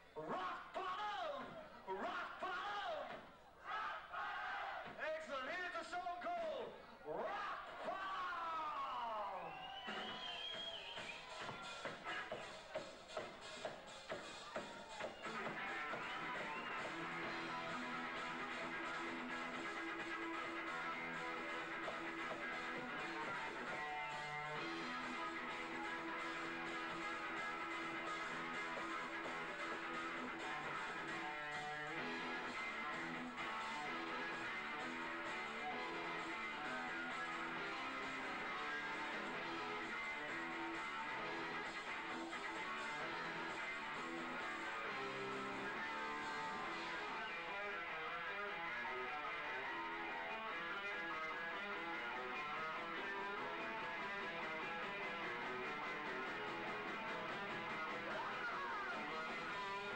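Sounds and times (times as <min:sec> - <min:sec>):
hard rock band playing live: 0:11.0 - 0:59.9.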